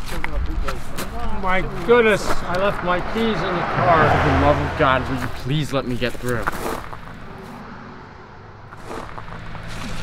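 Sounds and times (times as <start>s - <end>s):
distant traffic: 0.0s - 10.0s
low rumble: 2.0s - 8.7s.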